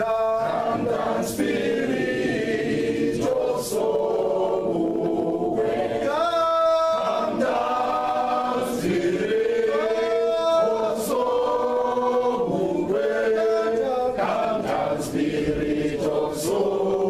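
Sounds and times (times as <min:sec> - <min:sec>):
group of voices singing: 0:00.0 - 0:17.0.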